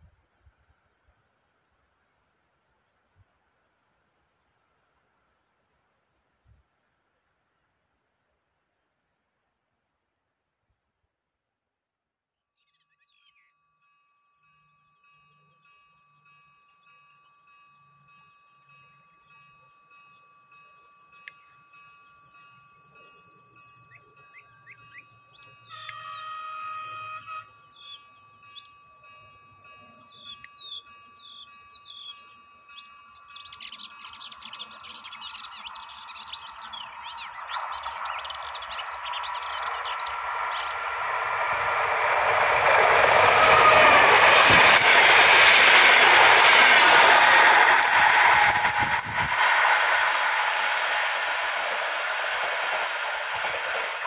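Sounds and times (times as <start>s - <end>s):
electric train passing: 13.8s - 54.0s
birds chirping: 30.0s - 46.5s.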